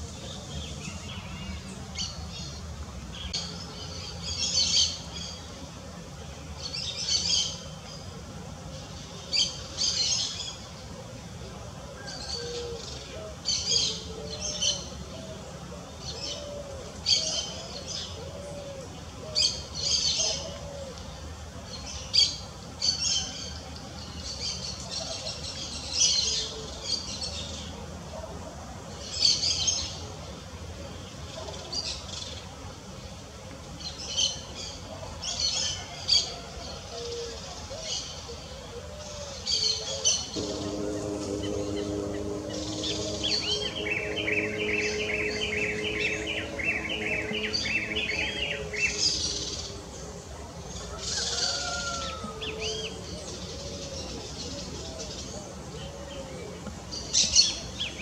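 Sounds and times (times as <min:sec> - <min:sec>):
faint low hooting: 0:40.3 - 0:50.8
low steady hum: 0:40.3 - 0:51.1.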